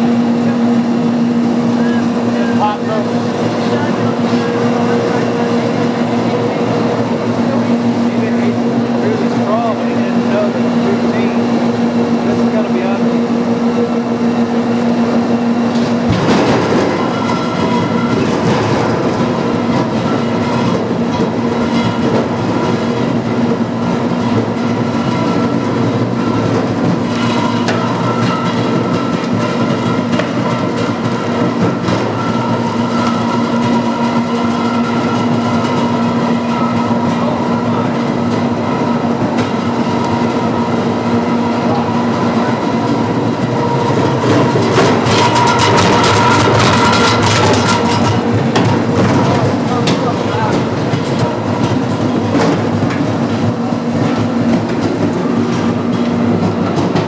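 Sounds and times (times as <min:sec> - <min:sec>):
pulp machine motor churning: 0:00.0 - 0:57.0.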